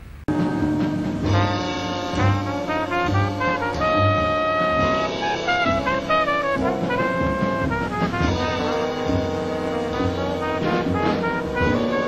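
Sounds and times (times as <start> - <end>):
jazz horn section playing: 0.3 - 12.0.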